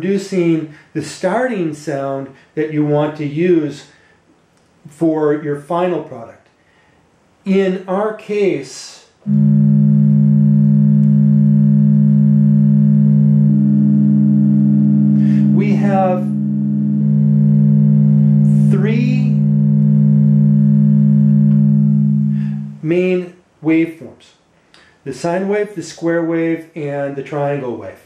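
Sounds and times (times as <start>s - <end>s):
synthesizer drone: 9.2s - 22.8s
higher synthesizer tone: 9.2s - 23.0s.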